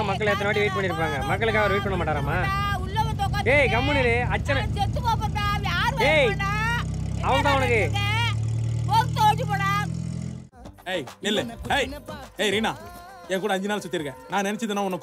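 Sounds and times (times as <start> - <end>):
car engine drone: 0.0 - 10.5.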